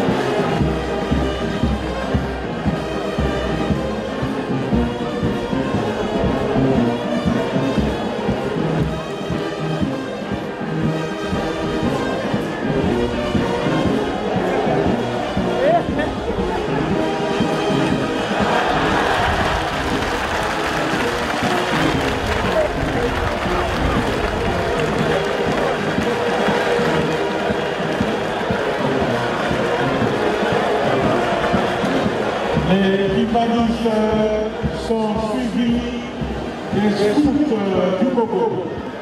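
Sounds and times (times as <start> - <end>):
brass band playing marching music: 0.0 - 39.0
crowd cheering: 0.0 - 39.0.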